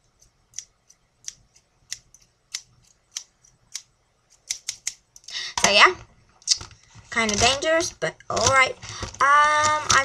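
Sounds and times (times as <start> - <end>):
scissors snipping: 0.2 - 5.0.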